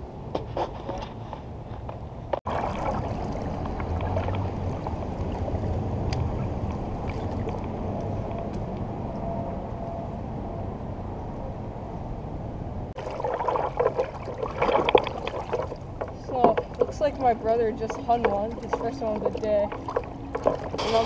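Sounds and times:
water splashing and sloshing: 0:00.3 - 0:09.1, 0:12.9 - 0:21.0
water lapping: 0:02.4 - 0:08.3, 0:13.0 - 0:21.0.

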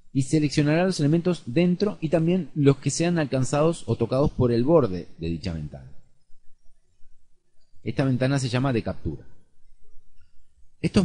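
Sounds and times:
faint low background noise: 0:00.0 - 0:11.0
man narrating: 0:00.2 - 0:06.0, 0:07.9 - 0:09.2.

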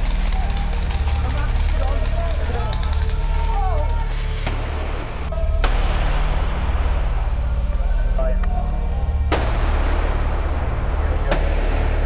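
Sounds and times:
music with heavy pulsing bass: 0:00.0 - 0:12.0
sharp bang with long echo: 0:09.3 - 0:12.0.

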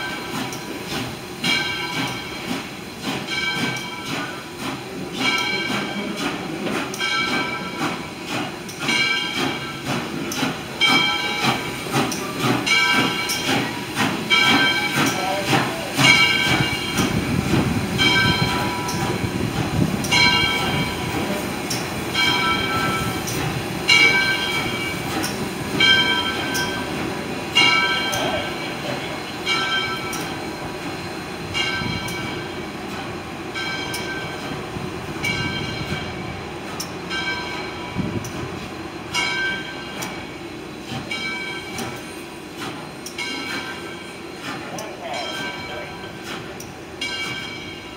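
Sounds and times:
locomotive bell ringing: 0:00.0 - 0:47.9
rumble of rolling train: 0:00.0 - 0:47.9.

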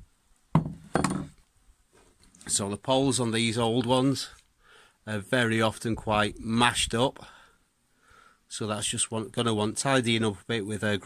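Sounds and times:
axe knocking on wooden planks: 0:00.6 - 0:01.3.

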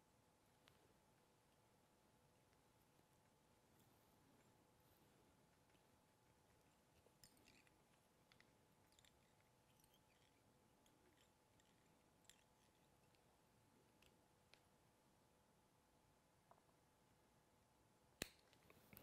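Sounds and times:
thin steady hum: 0:00.0 - 0:19.0.

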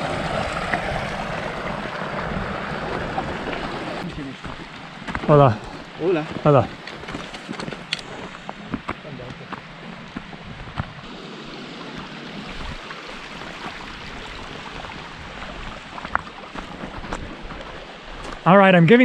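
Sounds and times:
stream running over rocks: 0:00.0 - 0:19.0
footsteps on stones: 0:03.5 - 0:11.1, 0:14.8 - 0:18.5.

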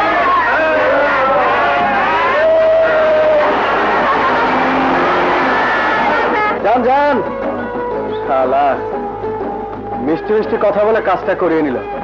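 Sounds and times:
background music: 0:00.0 - 0:12.0
car engine revving: 0:03.5 - 0:06.6.

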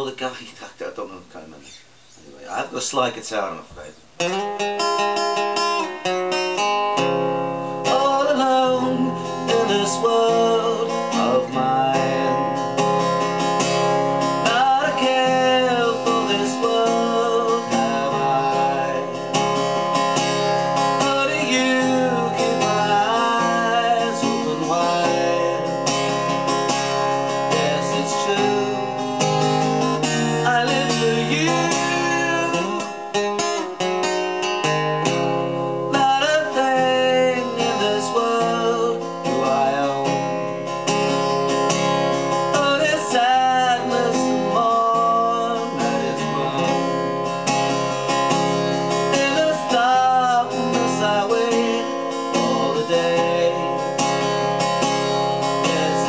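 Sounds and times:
acoustic guitar strumming: 0:02.5 - 0:56.0
man singing: 0:07.6 - 0:13.2, 0:14.2 - 0:33.5, 0:35.8 - 0:40.7, 0:42.1 - 0:56.0.

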